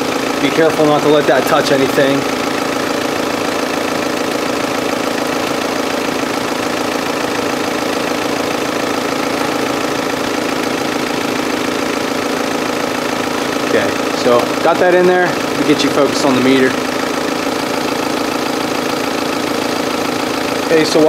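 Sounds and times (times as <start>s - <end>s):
car diesel engine idling: 0.0s - 21.0s.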